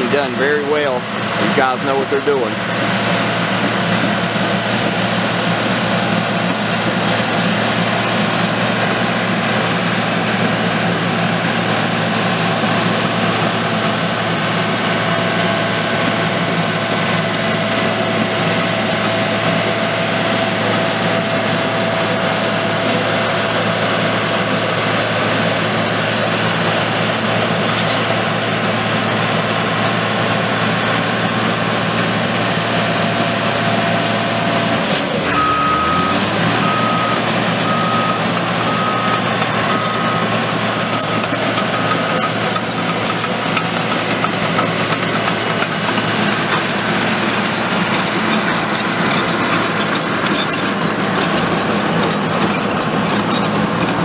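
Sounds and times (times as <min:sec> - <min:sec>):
dozer diesel engine running: 0:00.0 - 0:54.0.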